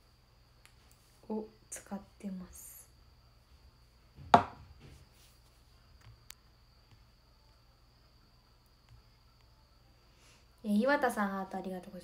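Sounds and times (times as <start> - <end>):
plastic tube knock: 4.3 - 4.6.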